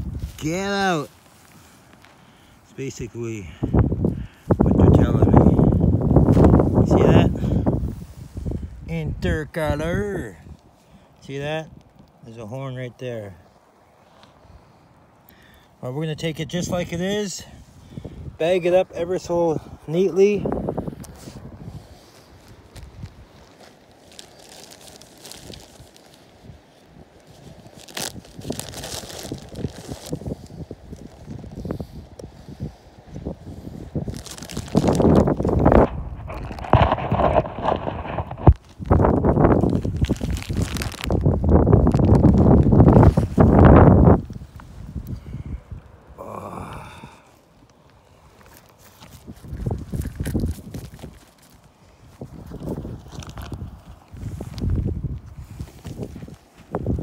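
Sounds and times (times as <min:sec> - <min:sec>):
shale rubble crunching: 0:34.0 - 0:44.3, 0:48.4 - 0:57.0.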